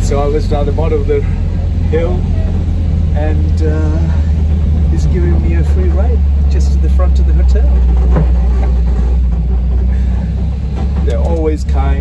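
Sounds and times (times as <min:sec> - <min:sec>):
vehicle engine and road rumble: 0:00.0 - 0:12.0
voices: 0:00.0 - 0:12.0.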